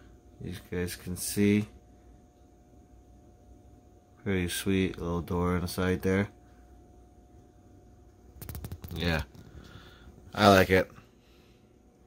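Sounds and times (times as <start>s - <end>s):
rattle of small clicks: 8.4s - 9.4s.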